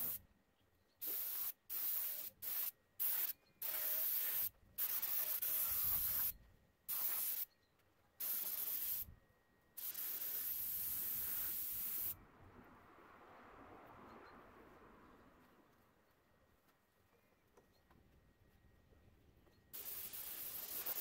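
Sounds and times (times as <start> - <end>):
spray gun hissing: 1.0 - 6.3, 6.9 - 7.5, 8.2 - 9.1, 9.8 - 12.2, 19.8 - 21.0.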